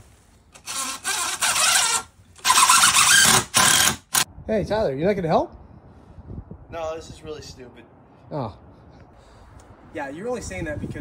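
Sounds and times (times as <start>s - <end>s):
impact driver driving screws: 0.6s - 4.3s.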